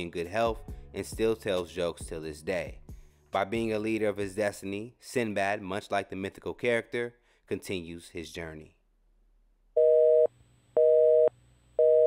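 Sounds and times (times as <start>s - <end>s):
telephone busy signal: 9.8s - 12.0s.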